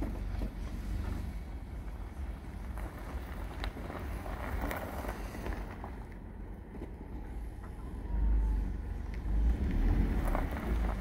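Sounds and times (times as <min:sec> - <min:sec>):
car engine rumbling: 0:00.0 - 0:11.0
tyres rolling over gravel: 0:00.0 - 0:11.0.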